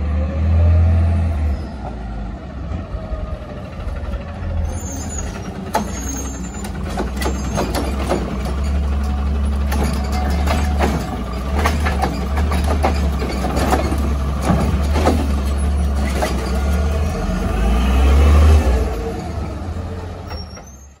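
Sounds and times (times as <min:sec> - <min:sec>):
diesel engine idling and revving: 0:00.0 - 0:21.0
recyclables clattering: 0:05.6 - 0:16.9.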